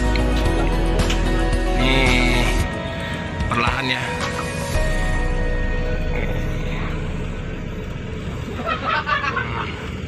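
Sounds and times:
background music: 0.0 - 9.1
diesel engine rumbling: 0.0 - 10.0.

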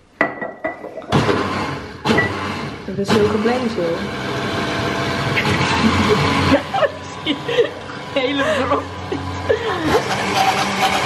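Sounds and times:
blender motor running: 1.1 - 11.0.

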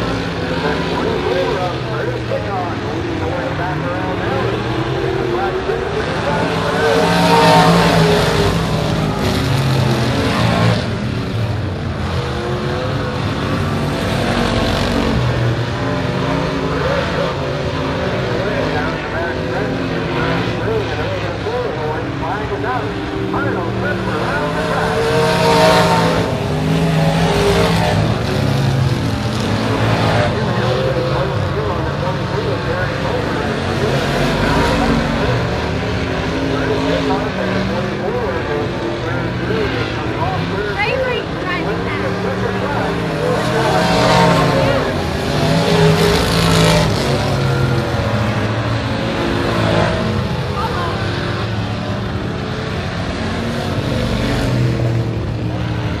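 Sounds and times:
race car engines revving: 0.0 - 56.0.

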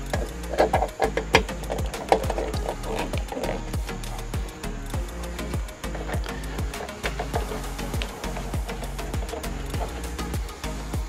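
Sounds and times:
background music with bass beat: 0.0 - 11.0.

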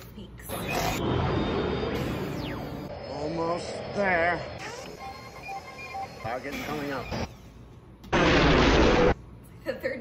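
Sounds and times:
space battle sound effects: 0.5 - 6.2, 8.1 - 9.2.

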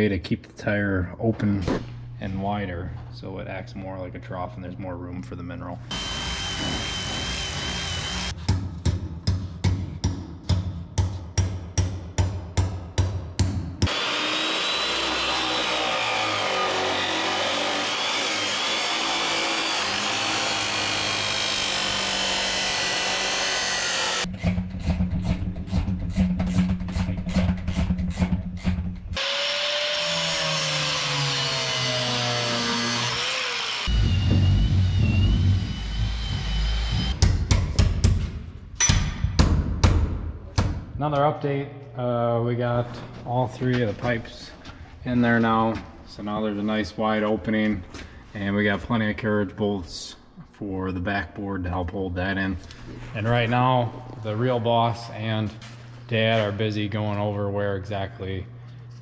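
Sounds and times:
cordless drill whining: 5.9 - 8.3
abrasive saw cutting steel pipe: 5.9 - 8.4, 13.8 - 37.2.

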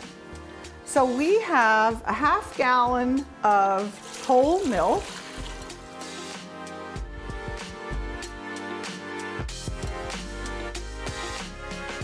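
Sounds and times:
background music: 0.0 - 12.0
milk pouring into metal pot: 3.8 - 6.3.

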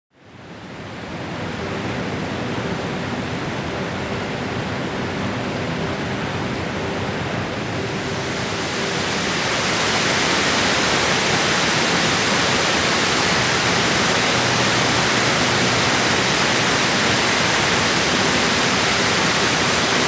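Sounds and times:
water rushing down dam: 0.3 - 20.0.

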